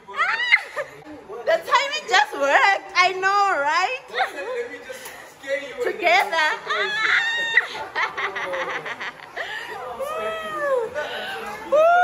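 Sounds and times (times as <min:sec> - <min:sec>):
laughter: 0:06.4 - 0:09.8.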